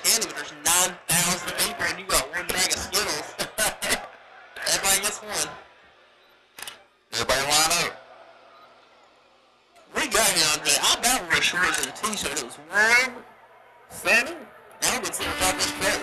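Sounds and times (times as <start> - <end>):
man talking: 0.0 - 5.6, 9.9 - 13.2, 14.0 - 16.0.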